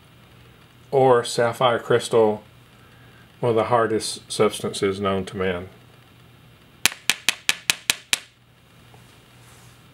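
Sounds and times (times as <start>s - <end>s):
glass screen protector tapping: 6.8s - 8.4s.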